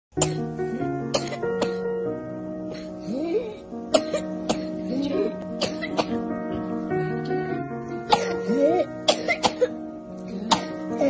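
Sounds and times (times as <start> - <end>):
soft background music: 0.1 - 11.0
boy coughing: 1.1 - 1.8, 4.0 - 4.8, 5.6 - 6.1, 8.1 - 9.8, 10.4 - 11.0.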